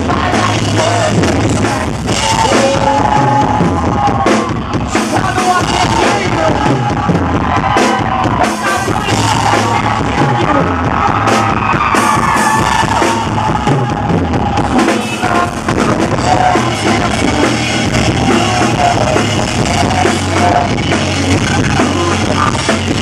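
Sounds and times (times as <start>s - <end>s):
drum kit: 0.0s - 23.0s
man singing lead vocal: 0.0s - 23.0s.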